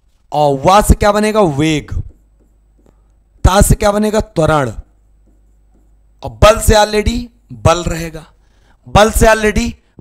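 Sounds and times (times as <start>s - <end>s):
man speaking: 0.3s - 2.2s, 3.4s - 5.0s, 6.2s - 9.9s
pen writing on board: 1.2s - 3.1s, 4.8s - 6.1s.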